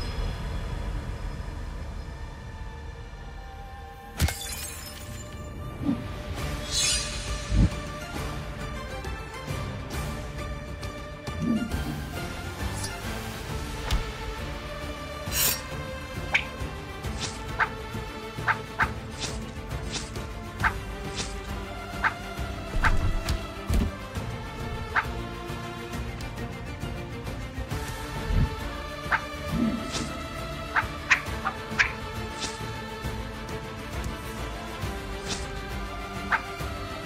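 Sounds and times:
background music: 0:00.0 - 0:37.0
glass shattering hit: 0:04.2 - 0:05.3
sword swishing through air: 0:06.6 - 0:07.9, 0:15.3 - 0:15.7, 0:17.1 - 0:17.4, 0:18.8 - 0:20.2, 0:21.1 - 0:21.5, 0:29.5 - 0:30.2, 0:31.8 - 0:32.7.

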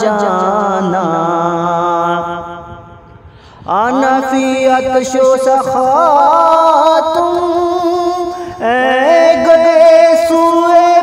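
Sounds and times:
solo voice singing: 0:03.6 - 0:11.0.

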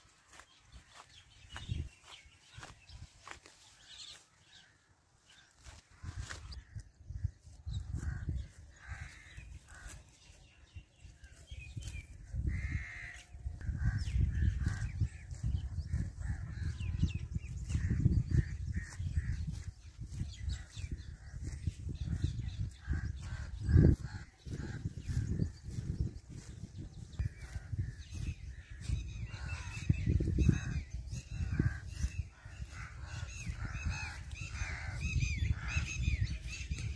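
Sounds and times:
birds chirping: 0:00.0 - 0:36.9
wind rumble on microphone: 0:00.3 - 0:03.9, 0:05.4 - 0:36.9.

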